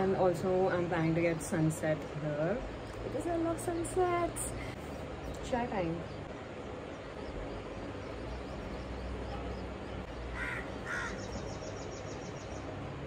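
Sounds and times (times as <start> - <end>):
steady low rumble: 0.0 - 13.0
harsh bird calls: 5.0 - 12.9.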